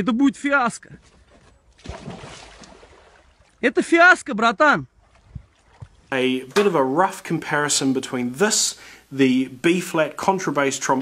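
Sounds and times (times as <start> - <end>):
dog thud and splash: 1.4 - 3.6.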